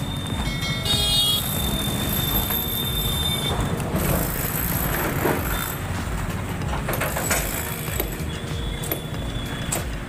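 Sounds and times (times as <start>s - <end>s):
high-pitched ringing tone: 0.0s - 3.6s
street noise rumble: 0.0s - 10.0s.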